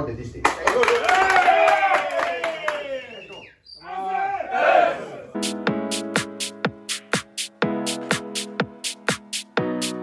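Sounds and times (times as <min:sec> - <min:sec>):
group of men shouting: 0:03.8 - 0:05.3.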